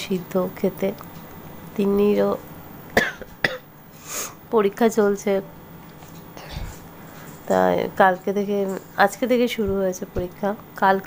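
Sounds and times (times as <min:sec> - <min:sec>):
person coughing: 0:03.0 - 0:03.6.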